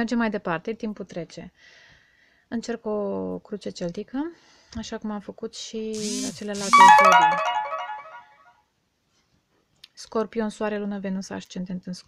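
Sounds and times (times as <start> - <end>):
electronic chiming melody: 6.0 - 8.3.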